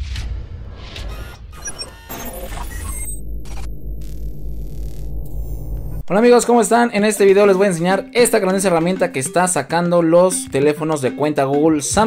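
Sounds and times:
high electronic blips: 0:00.9 - 0:06.1
low bass drone: 0:02.2 - 0:06.1.

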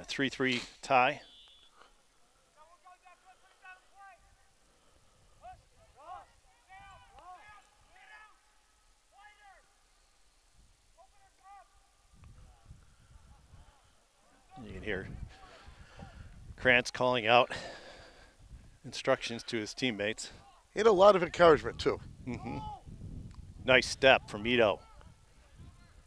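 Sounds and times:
distant players shouting: 0:05.4 - 0:09.9, 0:10.9 - 0:16.1.

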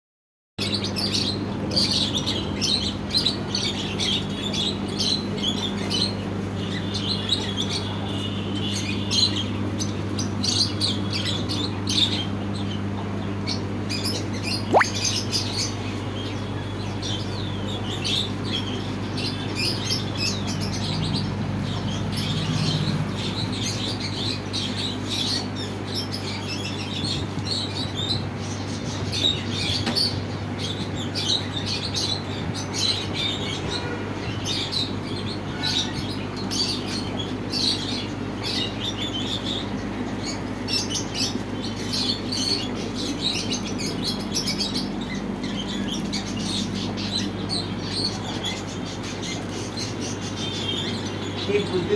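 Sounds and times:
small birds chirping: 0:00.6 - 0:51.9.

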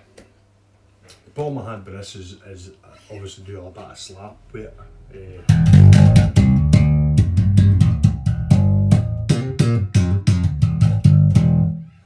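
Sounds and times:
slap bass guitar: 0:05.3 - 0:11.9.

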